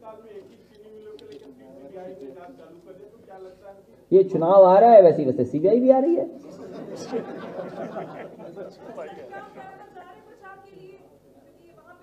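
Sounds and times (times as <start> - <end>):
people chattering: 5.8 - 12.0.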